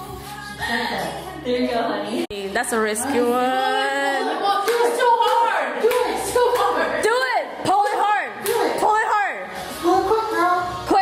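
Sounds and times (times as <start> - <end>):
people exclaiming and laughing: 3.2 - 11.0
sharp knocks or claps: 4.6 - 6.7.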